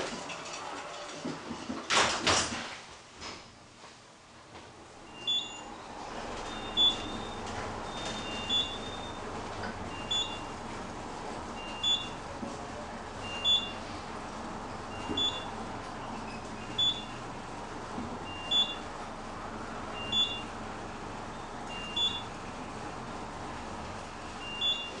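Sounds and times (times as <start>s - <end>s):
elevator running hum: 0.0s - 2.6s, 3.6s - 25.0s.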